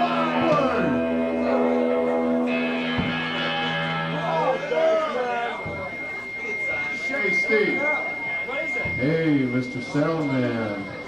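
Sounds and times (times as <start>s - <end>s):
electric guitar sustained notes: 0.0s - 11.0s.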